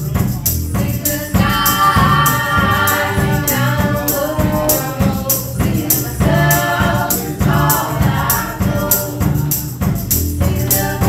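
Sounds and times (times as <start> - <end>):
drum kit: 0.0 - 11.0
percussion strikes: 0.0 - 11.0
women singing close harmony: 0.7 - 11.0.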